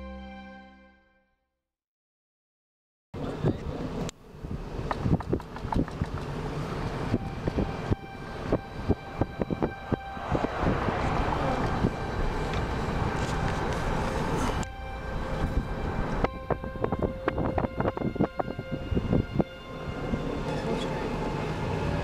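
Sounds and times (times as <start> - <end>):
car road and engine rumble: 3.2 - 22.0
sharp knocks and thumps: 4.8 - 7.6.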